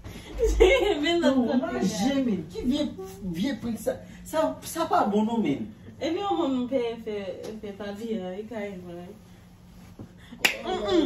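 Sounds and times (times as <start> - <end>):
hand snap: 10.4 - 10.7.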